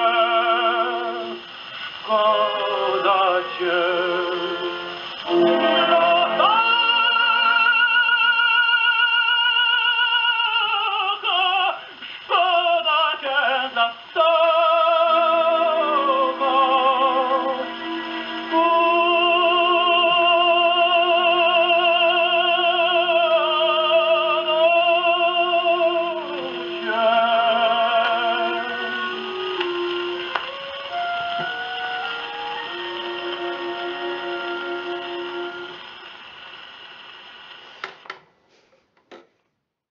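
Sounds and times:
tenor singing opera: 0:00.0 - 0:35.9
record surface hiss: 0:00.0 - 0:39.9
orchestra playing: 0:02.0 - 0:08.0, 0:15.6 - 0:21.7, 0:23.2 - 0:36.1.

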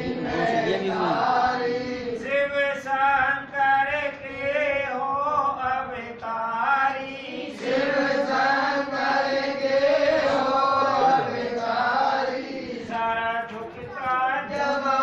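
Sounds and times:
men chanting devotional song: 0:00.0 - 0:15.0.

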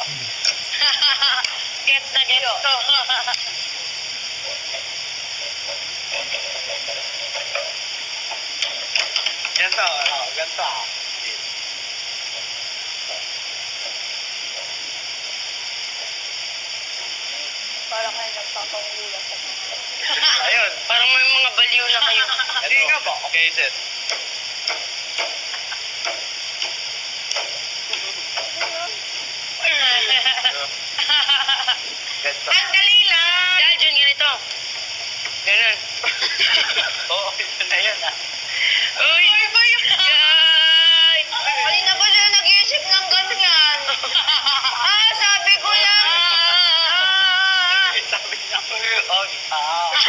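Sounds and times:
recording hiss: 0:00.0 - 0:50.0.

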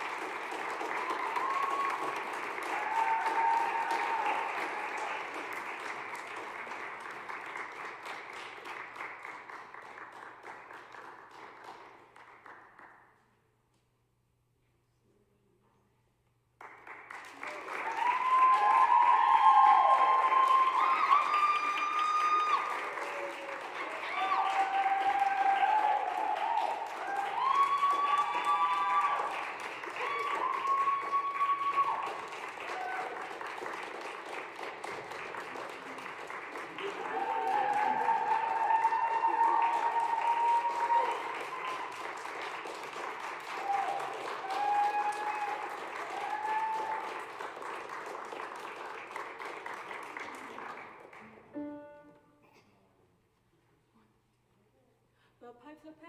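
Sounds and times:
audience applauding: 0:00.0 - 0:13.2, 0:16.6 - 0:51.8
voices cheering and whooping: 0:00.9 - 0:05.0, 0:17.5 - 0:33.3, 0:36.8 - 0:42.1, 0:43.5 - 0:47.2.

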